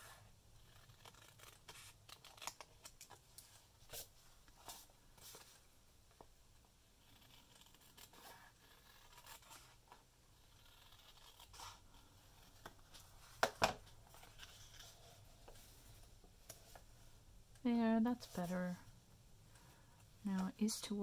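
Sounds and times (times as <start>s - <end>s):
scissors snipping paper: 0.7s - 3.1s.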